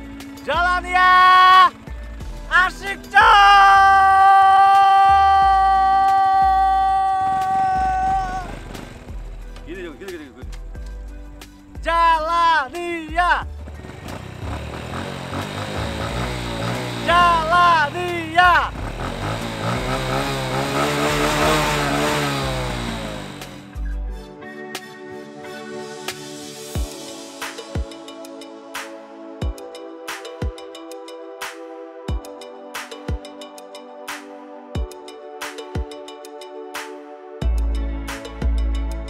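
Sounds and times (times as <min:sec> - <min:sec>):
background music: 0:00.0 - 0:39.0
motor scooter engine revving: 0:00.3 - 0:09.7, 0:13.4 - 0:23.8
man yelling: 0:00.5 - 0:01.8, 0:02.5 - 0:08.6, 0:11.8 - 0:13.4, 0:17.0 - 0:18.8
man whooping: 0:00.9 - 0:01.8, 0:02.5 - 0:08.6, 0:17.0 - 0:18.7.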